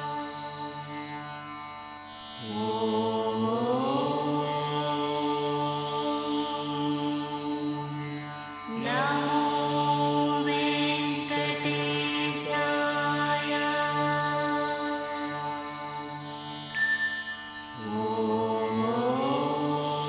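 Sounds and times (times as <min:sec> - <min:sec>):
mantra chanting: 0:00.0 - 0:01.2, 0:02.4 - 0:16.5, 0:17.7 - 0:20.0
steady drone: 0:08.7 - 0:20.0.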